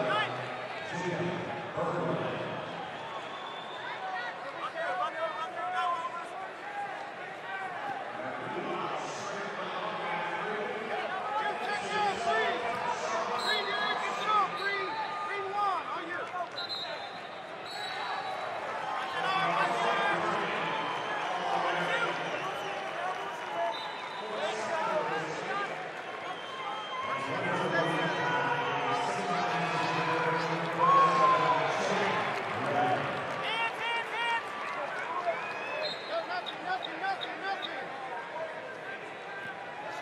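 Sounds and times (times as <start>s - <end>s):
indistinct arena voices: 0.0s - 40.0s.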